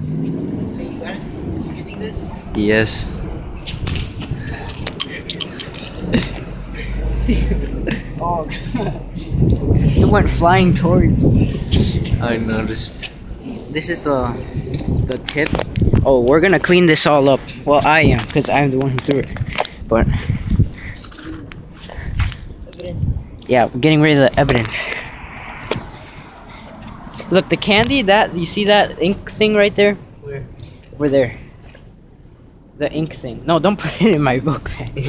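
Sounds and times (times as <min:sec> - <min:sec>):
low thumps: 0:05.9 - 0:16.6.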